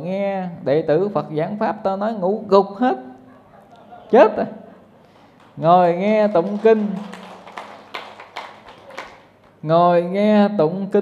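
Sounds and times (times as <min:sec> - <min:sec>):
man talking: 0:04.0 - 0:04.6, 0:05.6 - 0:07.1.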